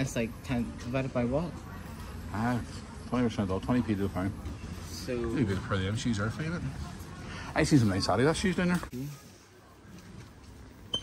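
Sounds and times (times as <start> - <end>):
shop background noise: 0.0 - 11.0.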